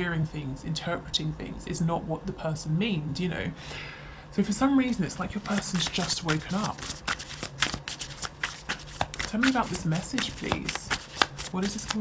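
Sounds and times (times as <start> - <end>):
cards being shuffled: 5.2 - 12.0.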